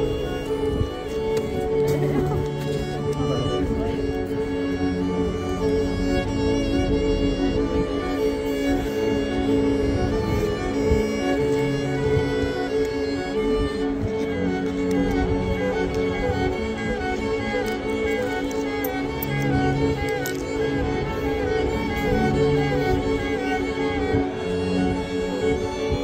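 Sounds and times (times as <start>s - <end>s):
cello bowed low notes: 0.0s - 26.0s
violin melody: 0.0s - 26.0s.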